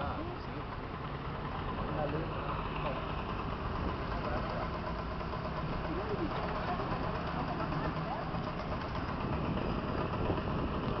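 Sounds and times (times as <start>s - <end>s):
street traffic rumble: 0.0s - 11.0s
people talking indistinctly: 1.4s - 9.0s.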